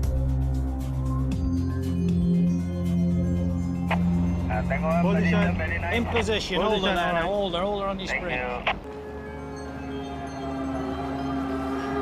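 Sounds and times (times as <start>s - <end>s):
slow sustained chords music: 0.0s - 12.0s.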